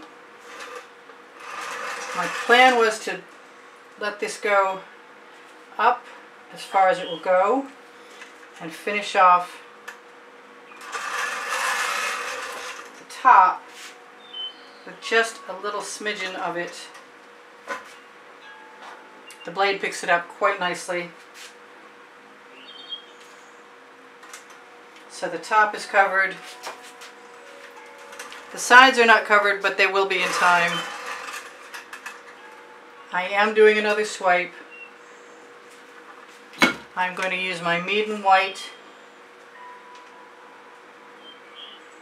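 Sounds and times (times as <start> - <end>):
faint steady hum: 0.0 - 42.0.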